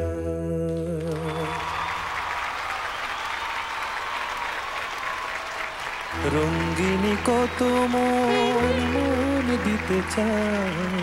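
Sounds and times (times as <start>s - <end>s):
audience applause: 1.0s - 11.0s
held sung note with accompaniment: 6.2s - 11.0s
soft held musical chord: 8.2s - 9.6s.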